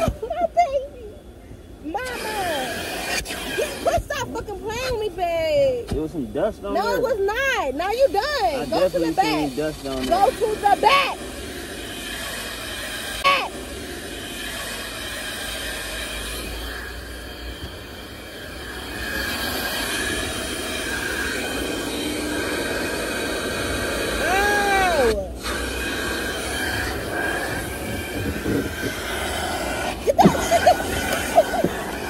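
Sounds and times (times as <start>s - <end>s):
vacuum droning with whine: 0.0s - 32.0s.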